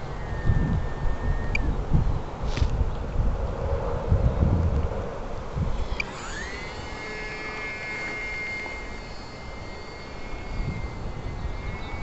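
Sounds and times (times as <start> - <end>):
electric motor and propeller whine: 0.0 - 12.0
wind noise on microphone: 0.0 - 12.0.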